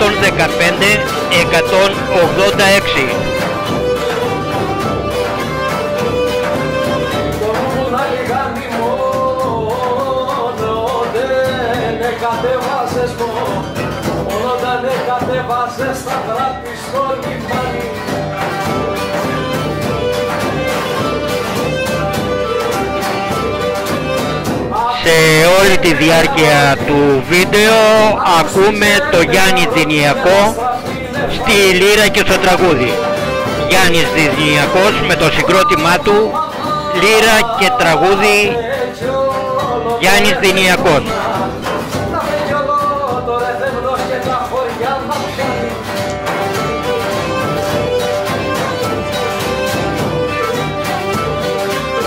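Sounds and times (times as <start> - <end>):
bowed fiddle melody: 0.0 - 7.4, 18.9 - 24.5, 25.1 - 36.3
rhythmic band accompaniment: 0.0 - 52.0.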